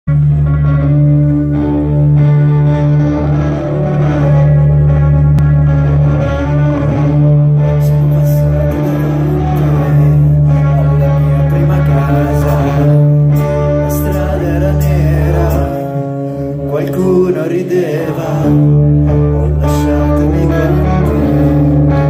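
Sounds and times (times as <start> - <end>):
live rock band playing: 0.1 - 22.0.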